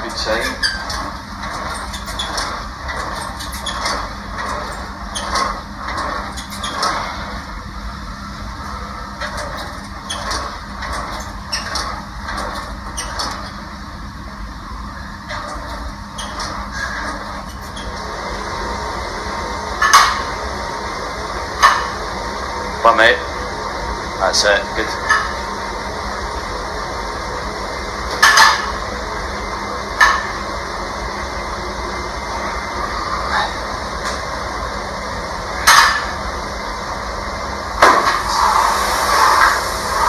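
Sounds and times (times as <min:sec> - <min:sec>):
steady hum: 0:00.0 - 0:40.0.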